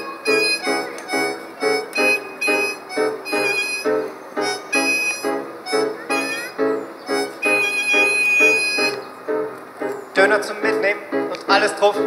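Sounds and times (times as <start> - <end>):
harmonica long high note: 0.0 - 9.1
piano chords: 0.0 - 12.0.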